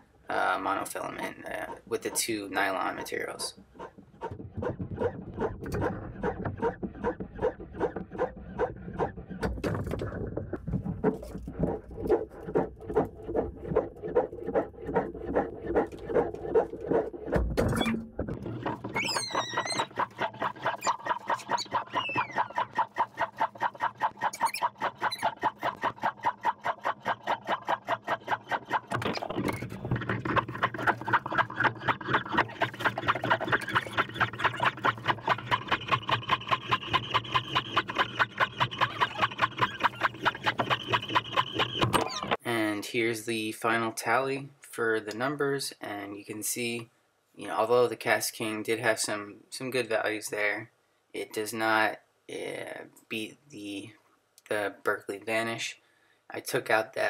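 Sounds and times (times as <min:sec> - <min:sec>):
fishing line rubbing squeak: 0:03.7 - 0:09.4, 0:11.2 - 0:25.9, 0:28.4 - 0:42.4.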